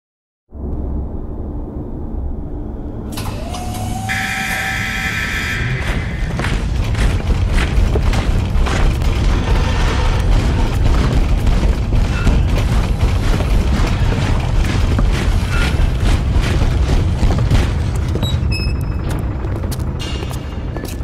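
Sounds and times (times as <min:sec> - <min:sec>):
deep low rumble: 0:05.2 - 0:21.0.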